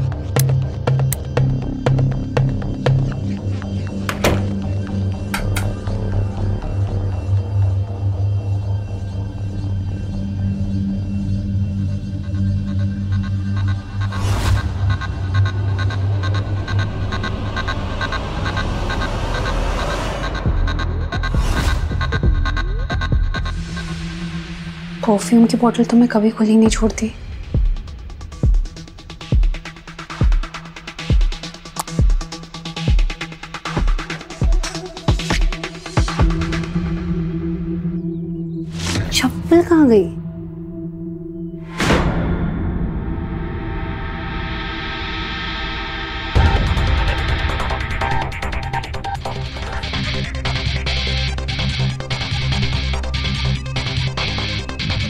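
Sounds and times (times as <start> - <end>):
low throbbing electronic drone: 0.0 - 55.0.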